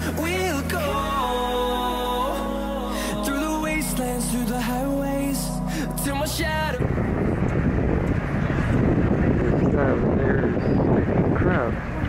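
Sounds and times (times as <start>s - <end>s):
wind buffeting microphone: 6.1s - 12.0s.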